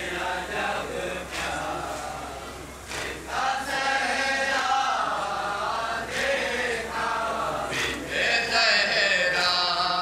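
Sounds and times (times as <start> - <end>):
men chanting in unison: 0.0 - 10.0.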